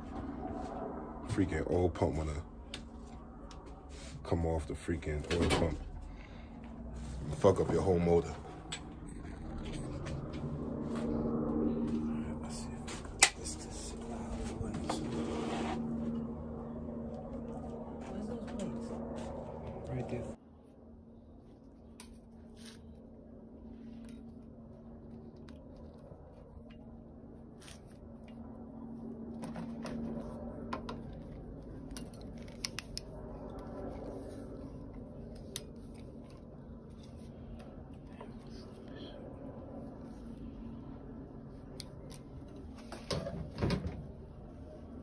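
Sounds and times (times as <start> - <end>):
faint steady hum: 0.0 - 45.0
wire clicks and pliers snips: 30.8 - 33.7.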